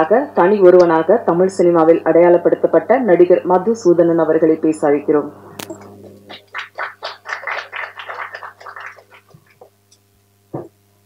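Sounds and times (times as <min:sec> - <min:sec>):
small group clapping: 0:05.6 - 0:09.9.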